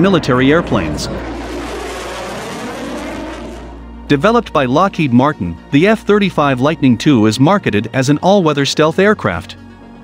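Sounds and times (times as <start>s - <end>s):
jet engine flying past: 0.0s - 4.5s
low background music: 0.0s - 10.0s.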